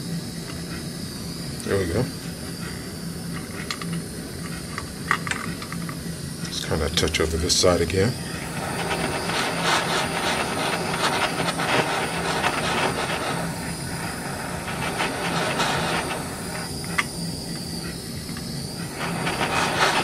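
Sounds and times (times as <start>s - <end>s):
gas torch flame hissing: 0.0s - 20.0s.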